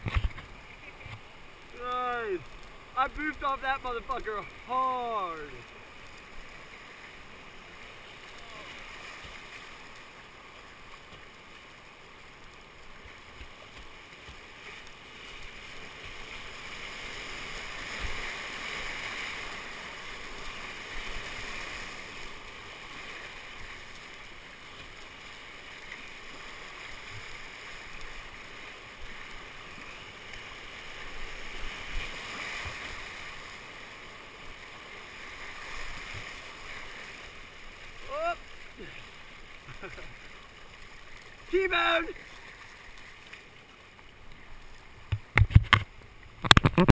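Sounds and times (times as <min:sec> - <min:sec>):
whitewater rushing: 0:00.0 - 0:43.1.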